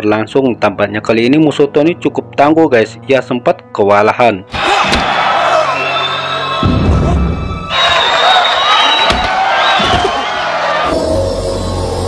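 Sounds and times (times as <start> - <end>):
action film music: 4.4 - 12.0
crowd cheering: 4.5 - 12.0.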